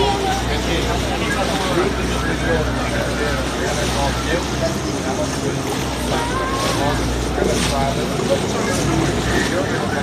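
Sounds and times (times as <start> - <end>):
motorboat engine droning: 0.0 - 10.0
people talking indistinctly: 0.0 - 10.0
water noise: 0.0 - 10.0.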